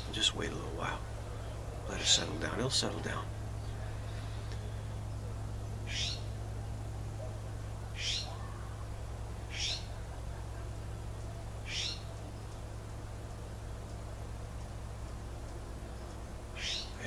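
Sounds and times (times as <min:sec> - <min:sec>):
steady low hum: 0:00.0 - 0:17.0
bird calling: 0:00.8 - 0:06.4, 0:07.1 - 0:12.8, 0:15.7 - 0:17.0.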